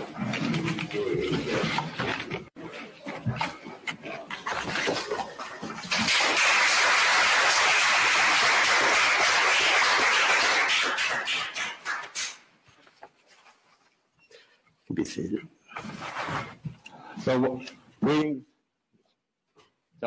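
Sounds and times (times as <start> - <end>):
small group applauding: 5.1 - 12.6.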